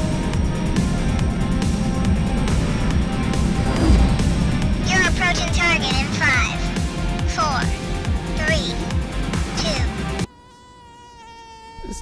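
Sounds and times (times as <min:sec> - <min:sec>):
music: 0:00.0 - 0:10.3
flying insect buzzing: 0:00.0 - 0:12.0.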